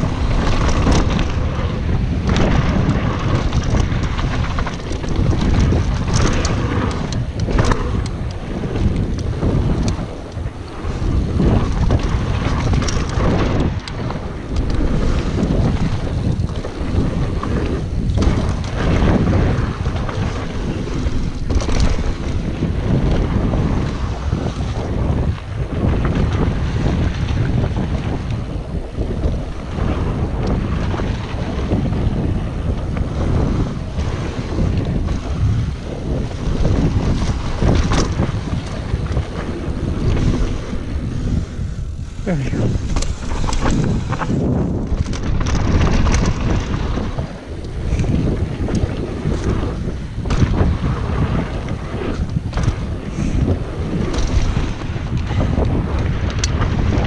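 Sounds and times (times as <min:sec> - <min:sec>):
bike rattling over bumps: 0:00.0 - 0:57.0
tyres rumbling on dirt: 0:00.0 - 0:57.0
wind buffeting microphone: 0:00.0 - 0:57.0.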